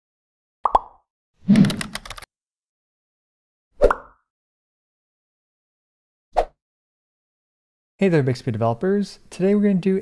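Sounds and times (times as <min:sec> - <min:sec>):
plops dropping in pitch: 0:00.6 - 0:01.0.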